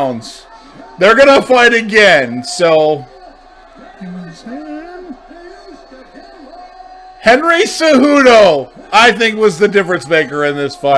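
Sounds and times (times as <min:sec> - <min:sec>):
faint broadcast speech: 0:00.0 - 0:10.9.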